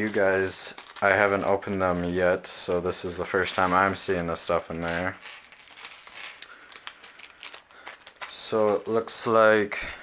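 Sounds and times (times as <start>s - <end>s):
plastic pieces clattering on a table: 4.8s - 9.0s.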